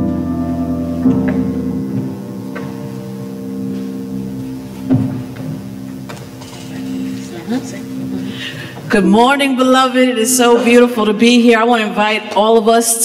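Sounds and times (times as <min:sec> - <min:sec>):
grand piano chords: 0:00.0 - 0:13.0.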